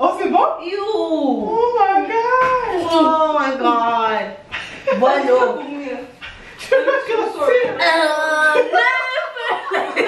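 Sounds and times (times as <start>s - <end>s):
young women laughing: 8.5s - 10.0s.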